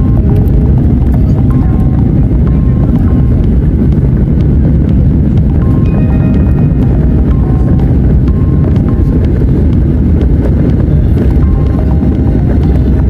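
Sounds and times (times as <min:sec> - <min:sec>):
background music: 0:00.0 - 0:13.0
jet engines rumbling: 0:00.0 - 0:13.0
wheels rolling on runway: 0:00.0 - 0:13.0.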